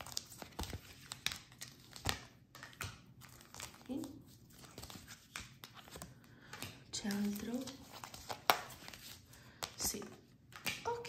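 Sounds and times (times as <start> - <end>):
cards shuffled by hand: 0.0 - 11.0.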